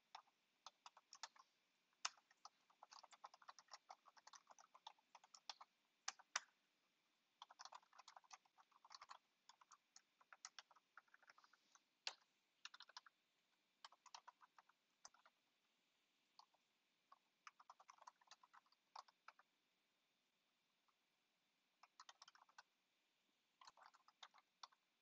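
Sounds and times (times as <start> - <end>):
typing on computer keyboard: 0.0 - 6.5, 7.4 - 13.1, 13.8 - 15.4, 16.4 - 19.5, 21.8 - 22.7, 23.6 - 24.8.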